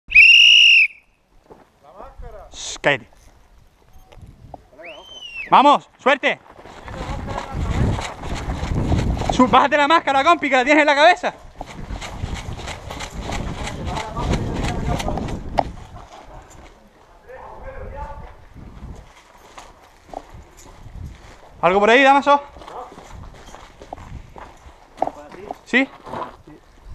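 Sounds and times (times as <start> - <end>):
high-pitched whistle blast: 0.1 - 1.2, 4.8 - 5.5
footsteps on gritty concrete: 1.4 - 1.8, 5.8 - 10.5, 18.1 - 26.9.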